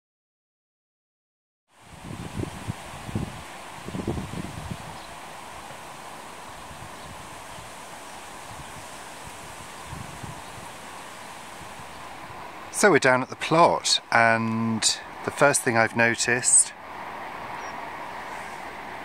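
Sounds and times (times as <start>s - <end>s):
leaves rustling: 1.7s - 19.0s
wind buffeting microphone: 1.8s - 15.3s
wind rushing: 1.8s - 15.4s.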